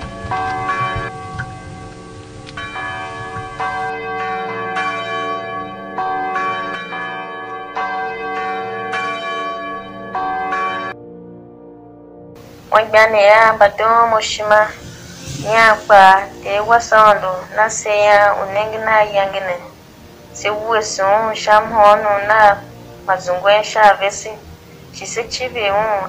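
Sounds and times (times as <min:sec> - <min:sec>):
church bells ringing: 0:00.0 - 0:26.0.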